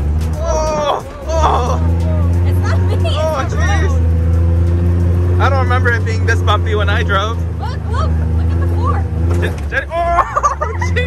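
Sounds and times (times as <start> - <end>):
off-road vehicle engine droning: 0.0 - 11.0.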